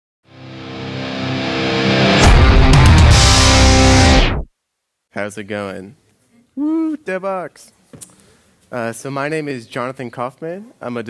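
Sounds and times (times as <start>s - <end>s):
held chord: 0.3s - 4.3s
guitar-driven rock music: 0.3s - 4.5s.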